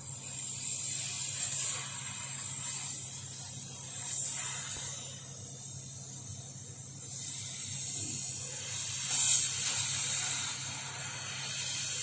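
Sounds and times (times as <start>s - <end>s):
laser cutter nozzle hiss: 0.0s - 12.0s.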